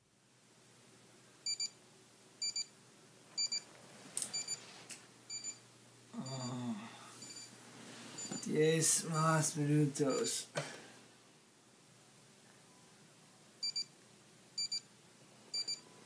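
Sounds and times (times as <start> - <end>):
alarm clock beeping: 13.6 - 13.8, 15.5 - 15.8.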